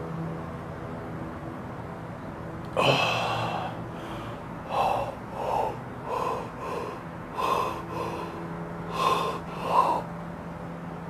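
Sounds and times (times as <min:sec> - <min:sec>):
loud gasp: 0:02.8 - 0:10.1
short sharp breaths: 0:02.8 - 0:10.2.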